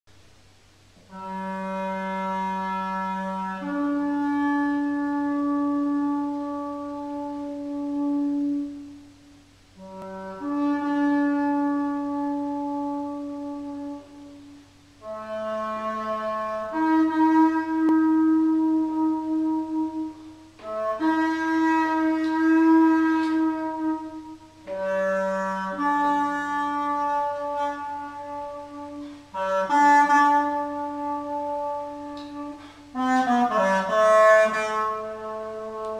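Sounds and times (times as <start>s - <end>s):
single-reed woodwind long notes: 0.7s - 35.9s.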